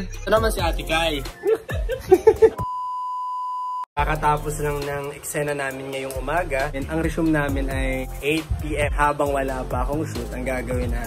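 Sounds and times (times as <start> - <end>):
steady electronic beep: 2.6 - 3.9.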